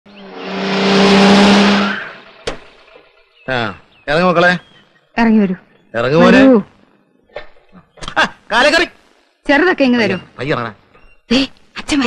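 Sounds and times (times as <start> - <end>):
tyres skidding on dirt: 0.2 - 3.3.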